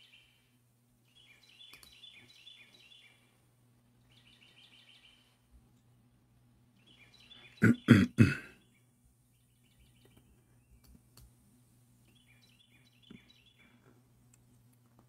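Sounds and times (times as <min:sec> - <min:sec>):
faint high chirps: 0:00.0 - 0:03.4
steady low hum: 0:00.0 - 0:15.0
man coughing: 0:07.6 - 0:08.6.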